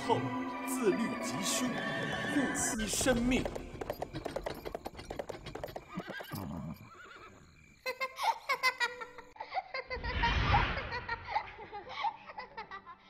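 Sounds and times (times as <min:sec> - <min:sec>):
hooves clip-clopping: 0:00.8 - 0:06.8
horse whinnying: 0:01.5 - 0:07.4.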